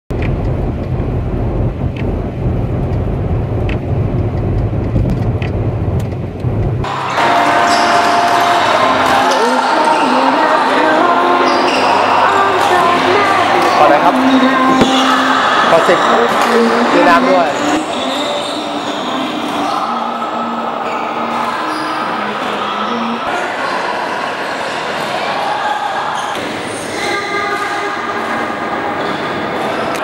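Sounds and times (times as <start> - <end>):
car driving on highway rumble: 0.1 - 6.9
loud voices talking: 6.8 - 30.0.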